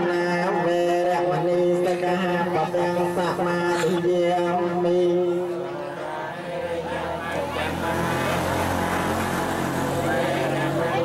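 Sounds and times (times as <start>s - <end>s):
elderly voices reciting prayer: 0.0s - 11.0s.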